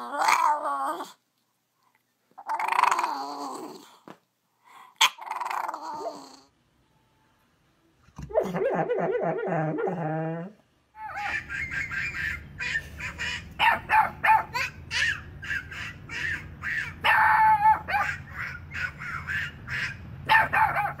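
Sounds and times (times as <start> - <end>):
dog barking: 11.1 - 21.0.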